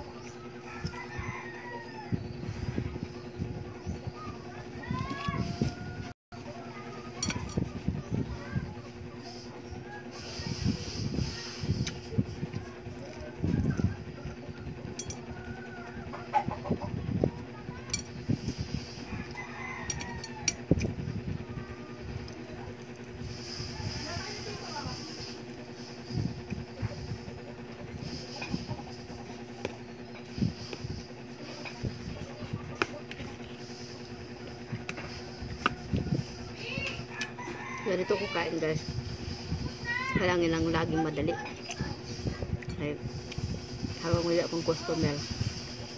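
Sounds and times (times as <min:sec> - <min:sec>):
low hum: 0:00.0 - 0:45.9.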